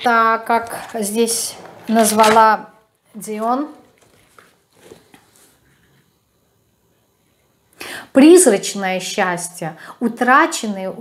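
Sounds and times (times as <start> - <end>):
woman speaking: 0.0 - 3.8, 8.2 - 11.0.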